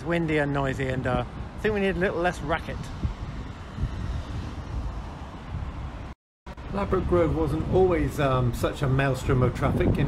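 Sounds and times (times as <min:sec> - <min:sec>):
road traffic: 0:00.0 - 0:10.0
wind buffeting microphone: 0:00.0 - 0:10.0.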